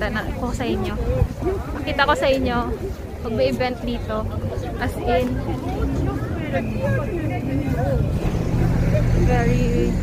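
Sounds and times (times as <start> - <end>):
bus engine rumbling: 0.0 - 10.0
chatter of passers-by: 0.0 - 10.0.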